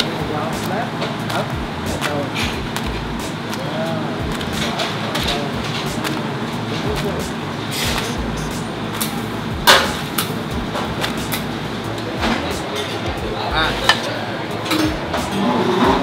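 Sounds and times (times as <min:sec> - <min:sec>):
indistinct background voices: 0:00.0 - 0:10.0, 0:10.6 - 0:16.0
kitchen clatter: 0:04.3 - 0:11.5, 0:12.2 - 0:13.1, 0:13.8 - 0:16.0.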